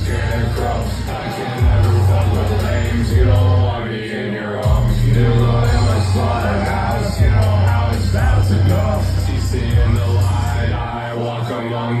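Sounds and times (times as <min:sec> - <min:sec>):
deep bass line: 0:00.0 - 0:03.8, 0:04.6 - 0:11.0
live rap music: 0:00.0 - 0:12.0.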